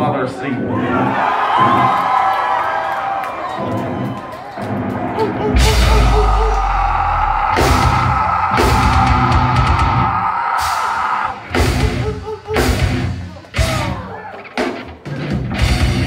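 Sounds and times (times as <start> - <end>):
crowd noise: 0.0 - 16.0
live metal band playing: 5.4 - 16.0.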